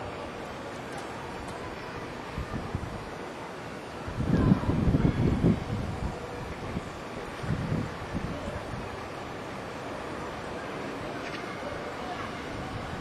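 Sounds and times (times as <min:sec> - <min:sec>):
wind buffeting microphone: 0:01.2 - 0:03.3, 0:04.0 - 0:10.6.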